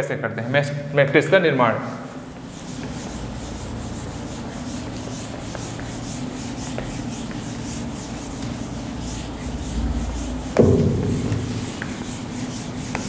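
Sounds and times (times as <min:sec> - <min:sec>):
duster rubbing whiteboard: 0:02.1 - 0:13.0.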